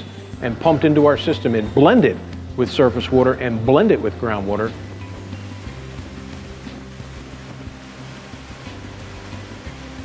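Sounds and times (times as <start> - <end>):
music with sustained low notes: 0.0 - 10.0
water rushing and churning: 4.3 - 10.0.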